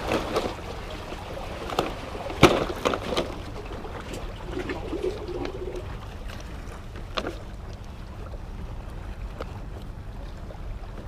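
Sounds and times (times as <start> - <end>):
wind and water around rocks: 0.0 - 11.0.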